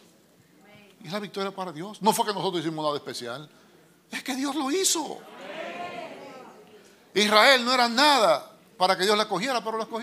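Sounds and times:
preacher speaking: 0:04.1 - 0:05.3, 0:07.1 - 0:10.0.

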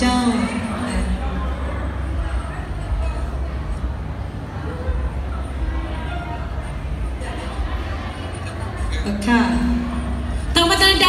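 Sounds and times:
faint distant voices: 0:00.0 - 0:11.0
low rumble of hall: 0:00.0 - 0:11.0.

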